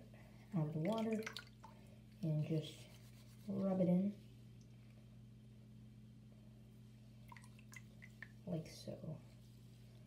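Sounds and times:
low steady hum: 0.0s - 10.0s
water dripping into sink: 0.8s - 1.8s, 7.3s - 8.4s.

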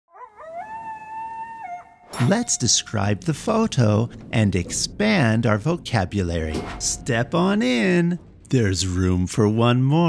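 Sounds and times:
coyote howling and yipping: 0.1s - 2.2s.

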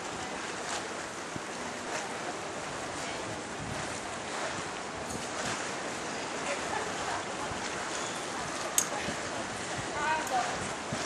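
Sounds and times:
wind buffeting microphone: 1.1s - 11.0s.

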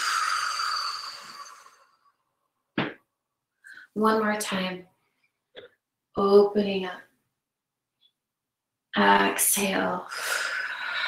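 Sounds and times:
woman exhaling: 0.0s - 1.9s.

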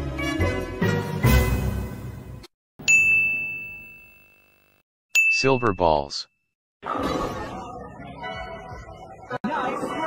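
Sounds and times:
music: 0.0s - 2.4s
bright ding: 2.8s - 4.5s.

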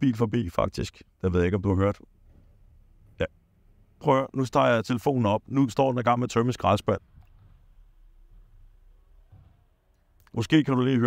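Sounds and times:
garbage truck low rumble: 2.0s - 4.4s.

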